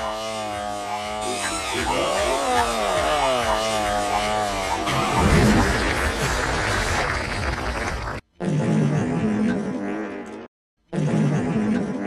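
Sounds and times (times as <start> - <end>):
buzzy gliding tone: 0.0 - 6.2
steady low drone: 0.0 - 7.3.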